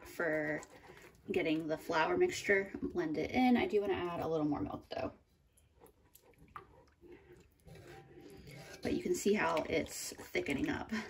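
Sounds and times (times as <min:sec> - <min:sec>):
whisk stirring wet sauce: 0:00.0 - 0:11.0.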